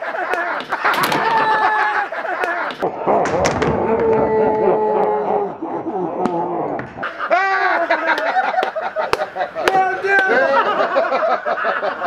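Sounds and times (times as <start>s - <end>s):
men yelling and laughing: 0.0s - 12.0s.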